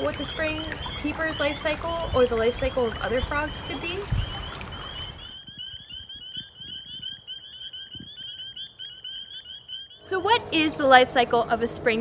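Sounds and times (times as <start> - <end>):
frogs peeping: 0.0 - 11.2.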